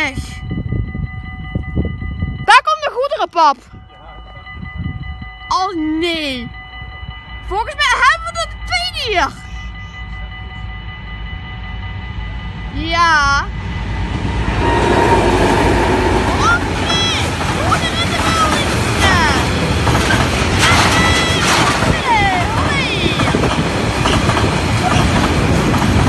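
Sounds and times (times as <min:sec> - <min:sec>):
level-crossing warning bells: 0:00.0 - 0:26.0
train rumbling past: 0:06.4 - 0:26.0.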